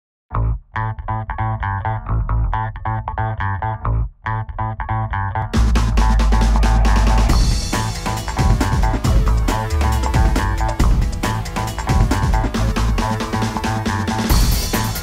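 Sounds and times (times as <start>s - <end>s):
plucked guitar and bass riff: 0.3s - 15.0s
drum kit: 5.6s - 15.0s.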